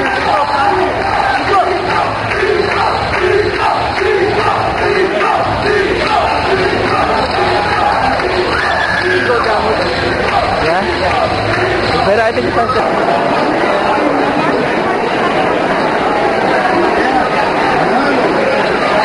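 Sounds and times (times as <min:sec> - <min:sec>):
crowd shouting and yelling: 0:00.0 - 0:19.0.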